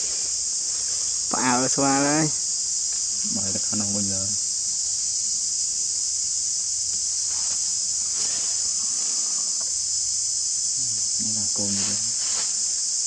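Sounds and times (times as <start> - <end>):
high-pitched insect chorus: 0.0 - 13.0.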